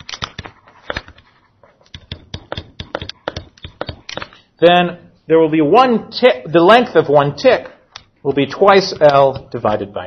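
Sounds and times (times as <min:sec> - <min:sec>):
stylus tapping on screen: 0:01.9 - 0:04.4, 0:08.9 - 0:09.6.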